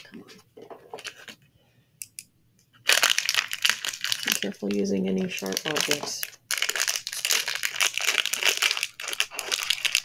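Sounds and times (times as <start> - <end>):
plastic wrapping crackling: 2.8 - 10.0.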